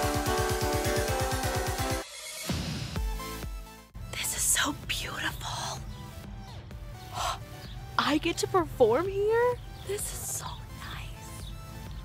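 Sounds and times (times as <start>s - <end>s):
woman whispering: 4.1s - 5.8s, 10.0s - 11.3s.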